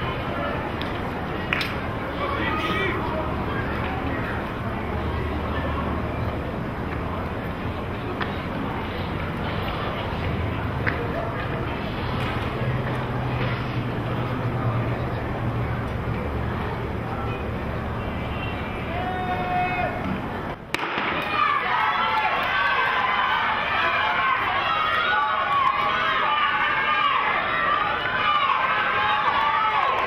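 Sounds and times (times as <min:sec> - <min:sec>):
stadium ambience: 0:00.0 - 0:30.0
starter's pistol crack: 0:20.8 - 0:21.3.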